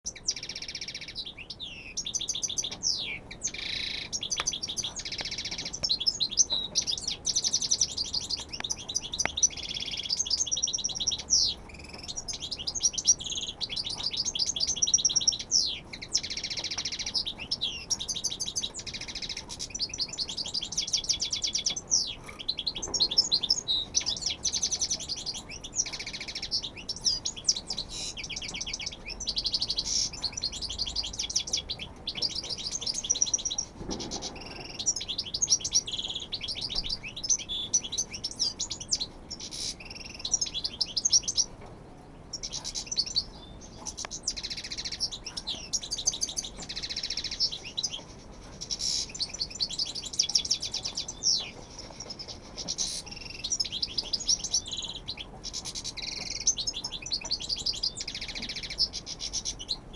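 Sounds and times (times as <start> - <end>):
goldfinch twittering song: 0.0 - 59.9.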